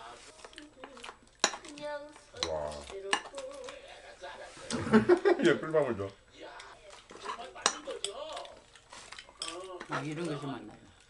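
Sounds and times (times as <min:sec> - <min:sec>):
utensils clinking against bowls: 0:06.6 - 0:10.6.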